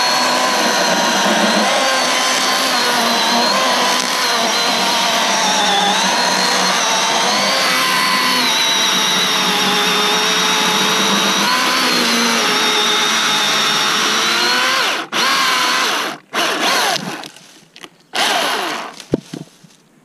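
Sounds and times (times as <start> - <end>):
chainsaw cutting log: 0.0 - 17.5, 18.1 - 19.5.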